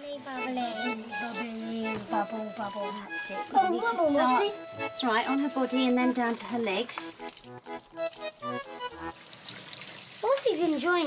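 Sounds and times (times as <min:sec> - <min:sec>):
light background music: 0:00.0 - 0:09.5.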